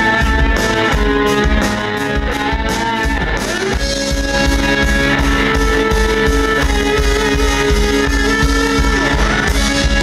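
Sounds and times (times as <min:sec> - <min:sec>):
electric guitar: 0:00.0 - 0:10.0
live band playing: 0:00.0 - 0:10.0.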